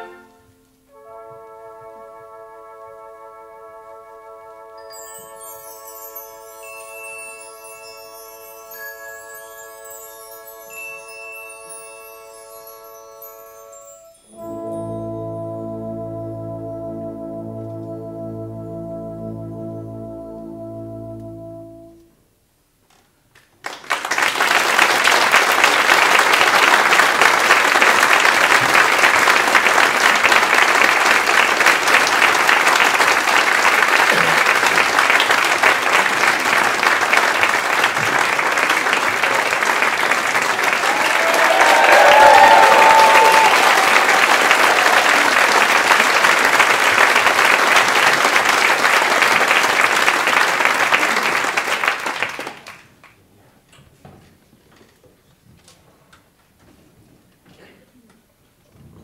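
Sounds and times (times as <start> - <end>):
audience applauding: 23.4 - 53.2.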